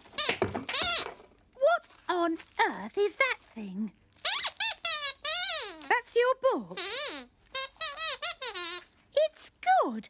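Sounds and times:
high-pitched warbling squeaks: 0:04.2 - 0:06.0, 0:06.7 - 0:08.8.

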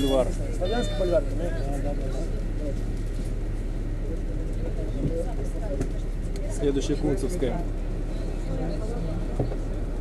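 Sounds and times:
bus engine idling: 0:00.0 - 0:10.0
indistinct passengers' voices: 0:00.0 - 0:10.0.

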